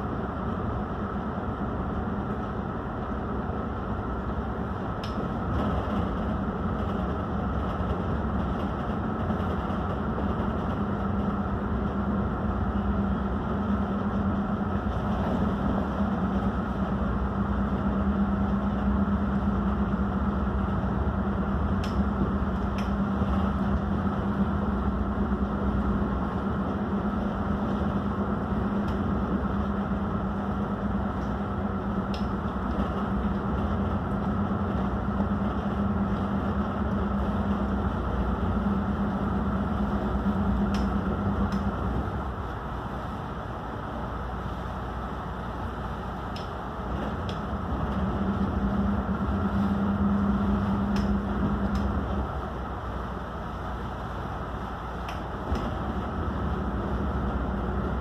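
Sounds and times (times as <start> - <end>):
boat engines droning: 0.0 - 58.0.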